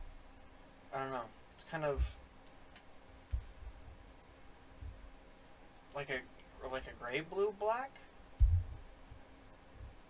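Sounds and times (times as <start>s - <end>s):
low thump: 8.4s - 8.9s.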